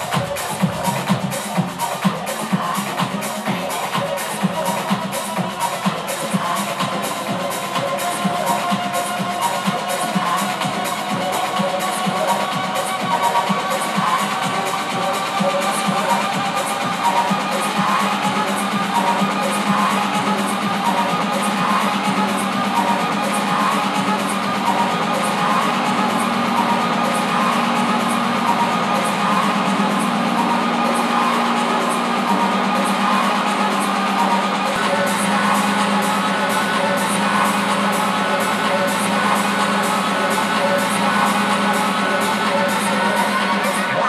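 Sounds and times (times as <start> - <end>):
hi-hat beat: 0.0 - 44.0
loud electronic dance music: 0.0 - 44.0.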